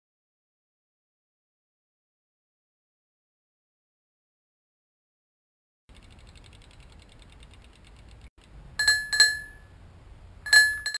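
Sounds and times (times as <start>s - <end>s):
bicycle freewheel ticking: 5.9s - 9.3s
bicycle bell ringing: 8.8s - 9.7s, 10.5s - 11.0s.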